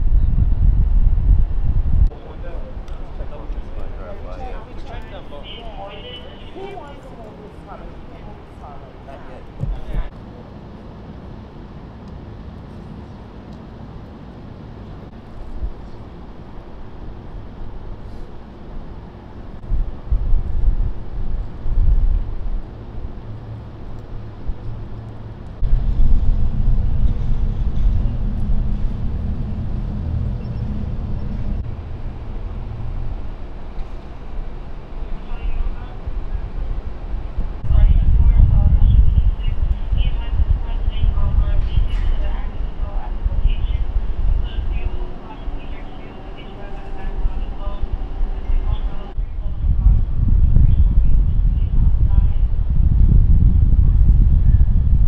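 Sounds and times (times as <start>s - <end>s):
low street rumble: 0.0s - 55.0s
people talking indistinctly: 2.1s - 10.1s, 37.6s - 49.8s.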